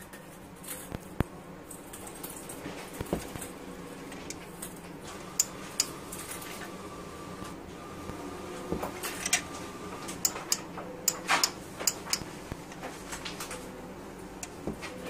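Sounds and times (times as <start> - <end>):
steady low hum: 0.4 - 15.0.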